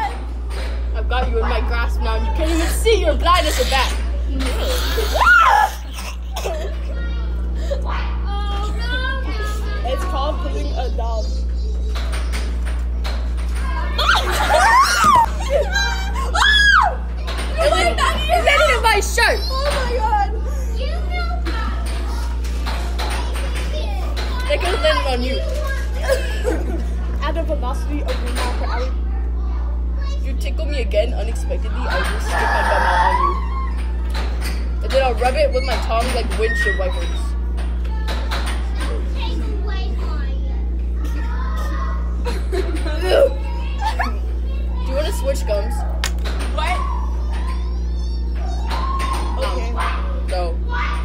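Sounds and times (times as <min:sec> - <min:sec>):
steady low hum: 0:00.0 - 0:51.0
young people chattering: 0:00.0 - 0:51.0.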